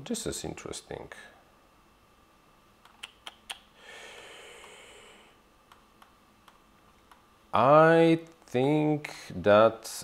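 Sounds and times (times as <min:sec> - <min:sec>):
computer clicks: 0:05.7 - 0:07.3.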